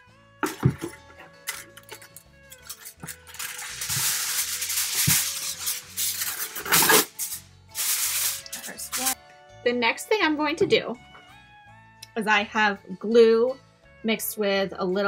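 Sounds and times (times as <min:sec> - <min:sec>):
background music with held notes: 0:00.0 - 0:15.0
aluminum foil crinkling: 0:01.4 - 0:09.2.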